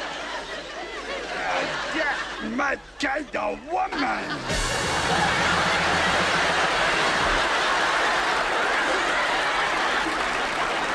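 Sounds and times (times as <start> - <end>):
audience laughter: 0.0 - 2.6, 3.4 - 10.9
audience applauding: 4.5 - 10.9.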